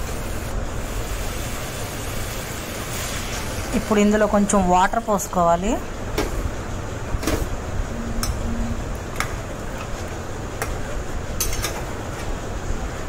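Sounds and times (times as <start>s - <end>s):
steady low rumble: 3.8s - 11.4s.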